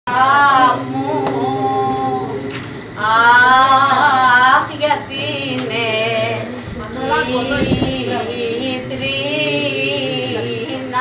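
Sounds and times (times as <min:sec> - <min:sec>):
person singing unaccompanied: 0:00.1 - 0:11.0.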